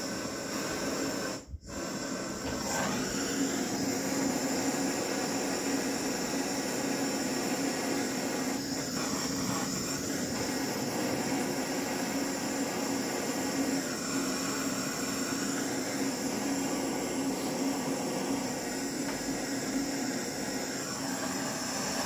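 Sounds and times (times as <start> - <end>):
blowtorch flame running: 0.0 - 22.0.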